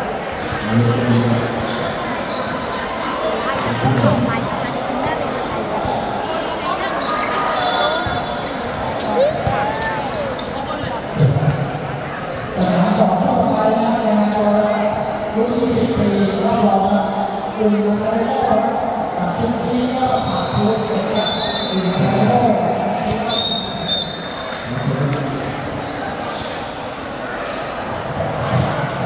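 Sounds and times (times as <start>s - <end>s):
voices of players and spectators: 0.0s - 29.0s.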